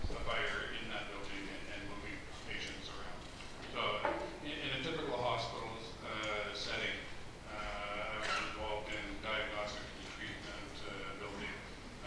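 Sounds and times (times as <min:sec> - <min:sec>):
man talking into microphone: 0:00.0 - 0:11.8.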